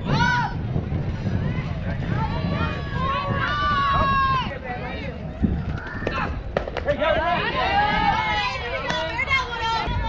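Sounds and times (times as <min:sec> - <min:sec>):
steady low rumble: 0:00.0 - 0:10.0
voices shouting: 0:01.4 - 0:10.0.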